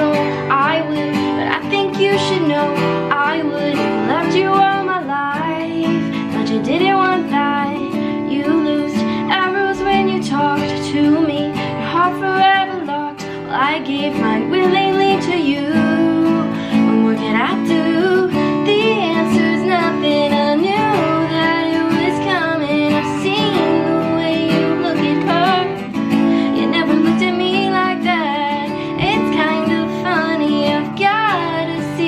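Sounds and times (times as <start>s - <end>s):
strummed acoustic guitar: 0.0s - 32.0s
woman singing with vibrato: 0.0s - 32.0s.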